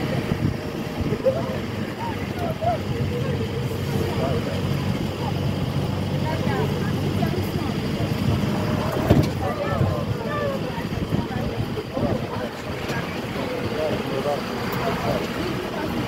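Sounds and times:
distant voices talking: 0.0 - 16.0.

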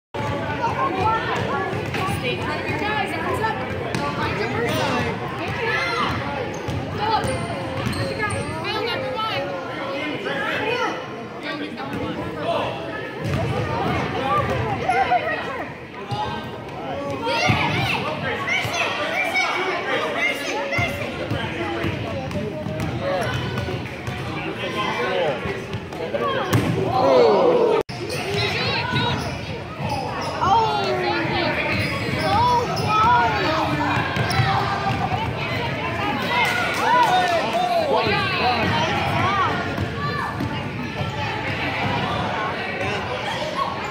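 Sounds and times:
spectators talking: 0.2 - 43.9.

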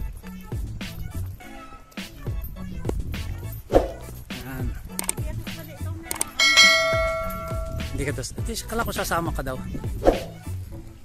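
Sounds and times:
background music: 0.0 - 11.0
notification bell ding: 6.4 - 8.0.

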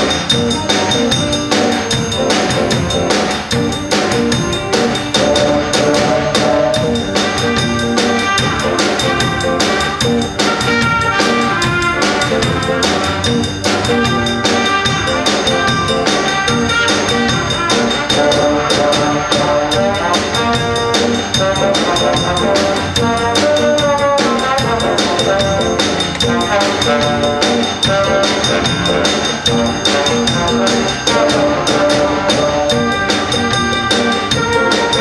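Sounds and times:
drum kit steady beat: 0.0 - 35.0
saxophones: 0.0 - 35.0
trombones: 0.0 - 35.0
trumpets: 0.0 - 35.0.

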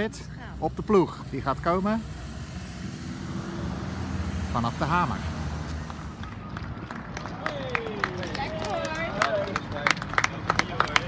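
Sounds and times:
vehicle engine and tyres rumbling: 0.0 - 11.0.

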